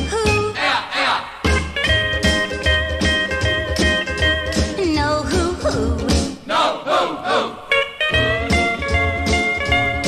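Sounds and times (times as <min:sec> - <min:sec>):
voices shouting together: 0:00.6 - 0:01.4, 0:06.5 - 0:07.7
rockabilly band playing: 0:01.2 - 0:06.5, 0:07.7 - 0:10.0
sustained guitar notes: 0:07.7 - 0:10.0.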